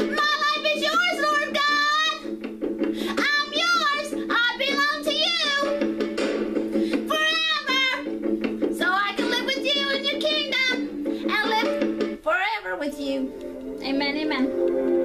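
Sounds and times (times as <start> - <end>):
instrumental backing: 0.0 - 15.0.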